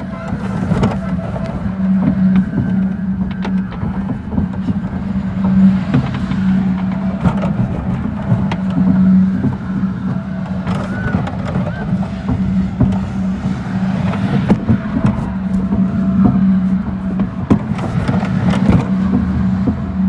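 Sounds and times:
metal clanks and rattles: 0.0 - 20.0
ride machinery drone: 0.0 - 20.0.

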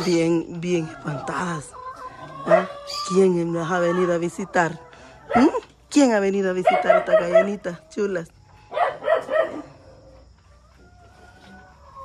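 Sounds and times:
dog barking: 2.5 - 2.8, 6.6 - 7.8, 8.7 - 9.8.

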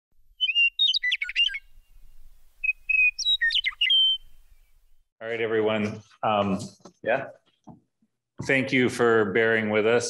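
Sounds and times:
songbird singing: 0.3 - 5.1.

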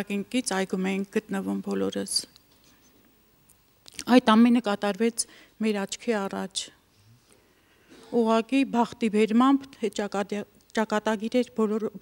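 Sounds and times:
woman speaking into a microphone: 0.0 - 2.4, 4.0 - 6.8, 8.1 - 12.0.

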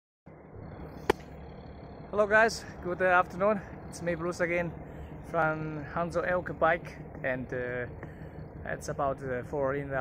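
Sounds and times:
low outdoor rumble: 0.3 - 10.0.

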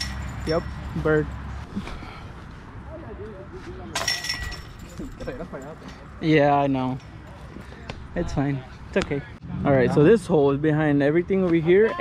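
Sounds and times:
disc striking metal basket: 0.0 - 0.8, 4.0 - 5.0.

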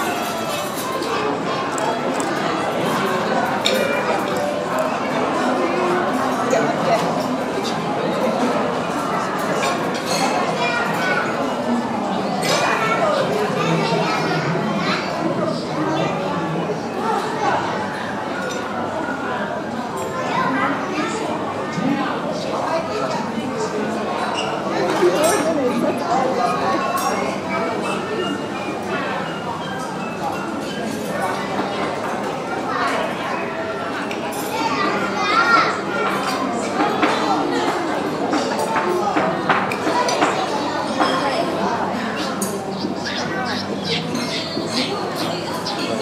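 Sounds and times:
children's voices chattering: 0.0 - 46.0.

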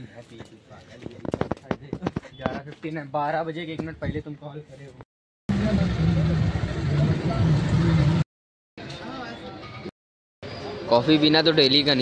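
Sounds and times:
auto-rickshaw engine drone: 5.5 - 8.2
road noise: 5.5 - 8.2, 8.8 - 12.0.

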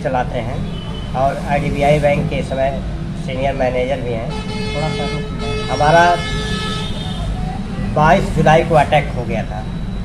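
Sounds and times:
vehicle horn long note: 4.3 - 7.3.

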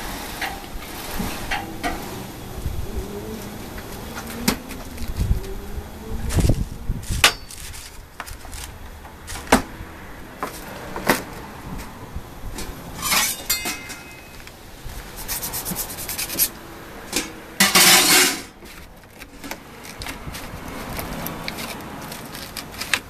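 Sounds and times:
foil crinkling: 6.3 - 9.5, 18.6 - 23.0
paper rustling: 6.3 - 9.5, 14.3 - 16.5, 18.6 - 23.0
metal clinks: 13.0 - 14.4.

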